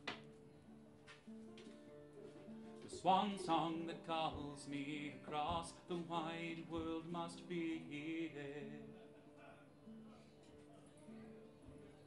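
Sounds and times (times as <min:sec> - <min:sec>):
acoustic guitar strum: 0:00.0 - 0:09.2.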